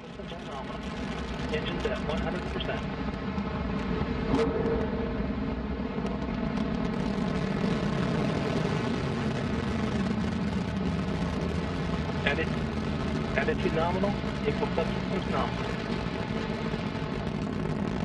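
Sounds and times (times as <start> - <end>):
distant rocket engine rumble: 0.0 - 18.0.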